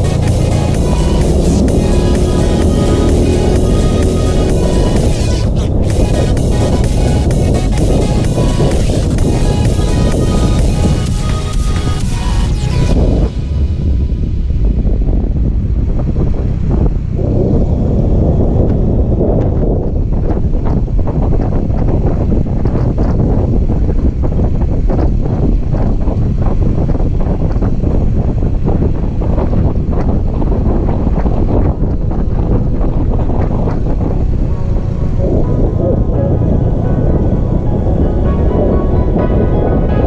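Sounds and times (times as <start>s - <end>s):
wind buffeting microphone: 0.0s - 40.0s.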